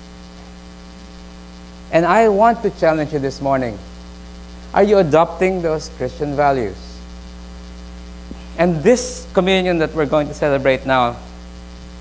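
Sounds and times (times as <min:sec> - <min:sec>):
electrical mains hum: 0:00.0 - 0:12.0
man speaking: 0:01.9 - 0:03.9, 0:04.7 - 0:07.0, 0:08.5 - 0:11.4.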